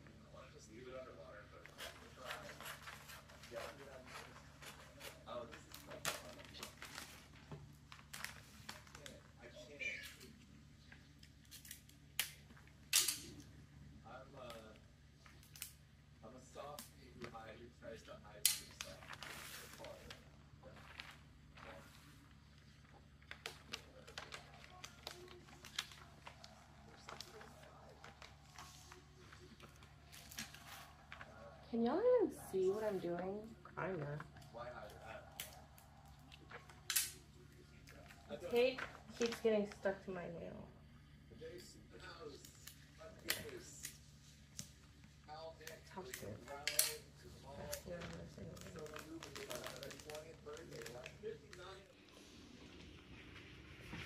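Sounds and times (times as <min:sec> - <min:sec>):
wrapping paper clicks: 0:01.6 - 0:13.5, 0:16.5 - 0:33.6, 0:34.2 - 0:39.9, 0:42.2 - 0:52.0
faint voices: 0:16.2 - 0:53.9
sticky tape tearing: 0:36.3 - 0:37.2.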